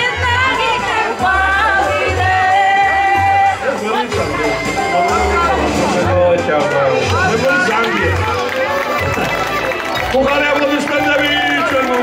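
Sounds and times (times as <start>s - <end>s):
background music with bass: 0.0s - 12.0s.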